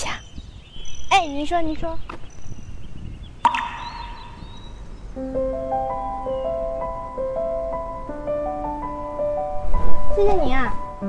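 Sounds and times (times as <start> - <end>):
sharp hit: 3.4 - 4.8.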